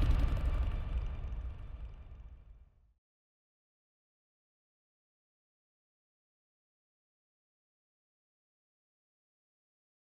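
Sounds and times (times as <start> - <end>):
deep rumbling boom: 0.0 - 2.7.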